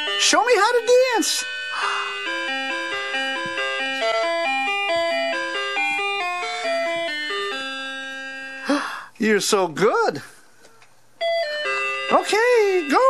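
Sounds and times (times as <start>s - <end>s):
electronic tune of bell-like notes: 0.0s - 8.6s.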